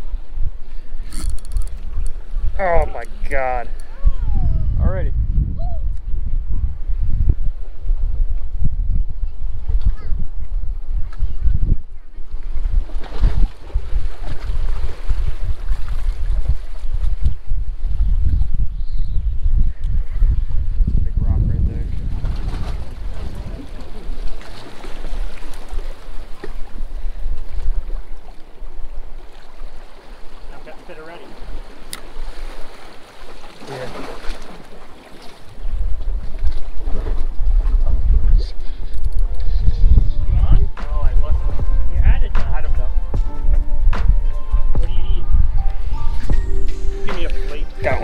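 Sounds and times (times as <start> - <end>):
wind buffeting microphone: 0.0 - 30.7, 31.3 - 48.0
water washing against rocks: 29.3 - 36.8.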